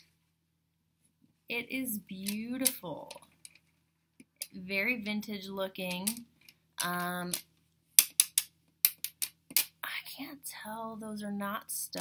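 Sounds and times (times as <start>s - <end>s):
necklace beads clicking: 5.9s - 9.8s.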